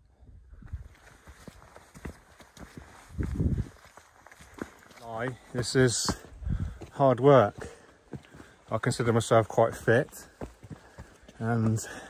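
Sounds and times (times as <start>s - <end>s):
boots stepping on rocky path: 0.7s - 12.0s.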